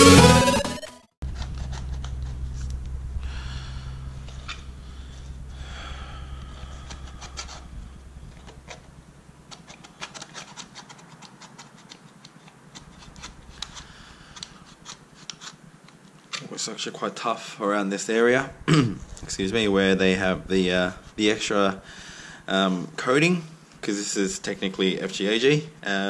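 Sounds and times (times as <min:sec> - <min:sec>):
low hum: 0:00.0 - 0:11.0, 0:12.6 - 0:16.0, 0:18.2 - 0:22.6
knife scraping and cutting sole: 0:01.2 - 0:02.4, 0:09.5 - 0:15.6
scratchy clicks: 0:01.2 - 0:16.5, 0:18.4 - 0:22.4.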